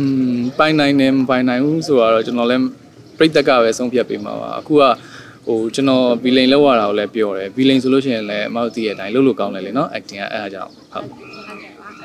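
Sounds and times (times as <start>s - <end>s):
man speaking in a low voice: 0.0s - 11.2s.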